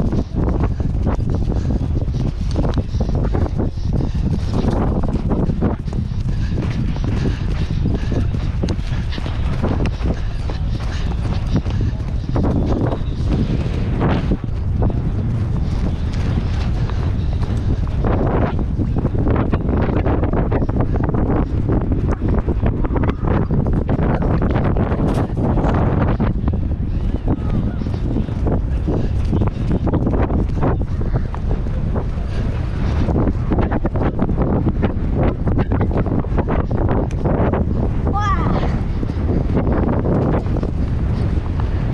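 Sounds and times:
hoofbeats galloping on turf: 0:00.0 - 0:41.9
wind rumble on microphone: 0:00.0 - 0:41.9.

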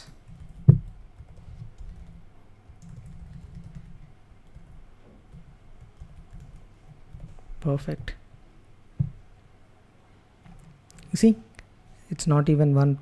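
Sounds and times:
computer keyboard typing: 0:00.2 - 0:07.4.

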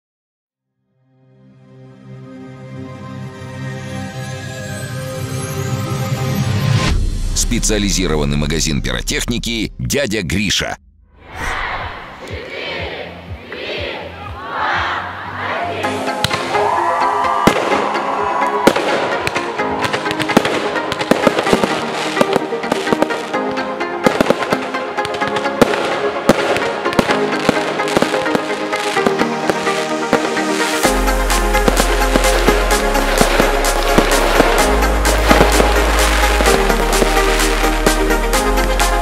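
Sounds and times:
whooshing sweeps: 0:11.2 - 0:13.1
music with held notes: 0:12.4 - 0:39.0
firework bangs and crackles: 0:17.4 - 0:23.4, 0:24.0 - 0:39.0.

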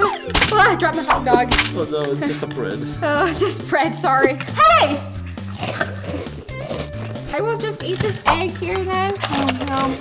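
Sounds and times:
background music with stepping bass: 0:00.0 - 0:10.0.

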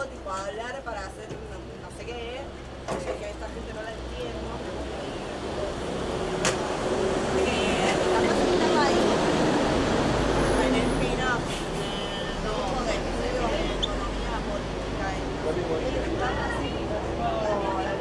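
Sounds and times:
low traffic hum: 0:00.0 - 0:18.0
vehicle passing: 0:03.9 - 0:18.0.

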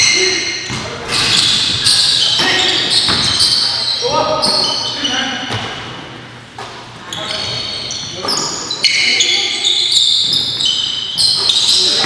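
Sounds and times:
shoes squeaking on floor: 0:00.0 - 0:05.7, 0:06.6 - 0:12.0.

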